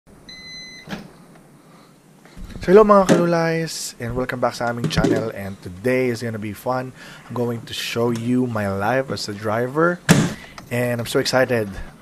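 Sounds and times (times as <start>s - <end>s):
microwave oven beep: 0.2s - 1.0s.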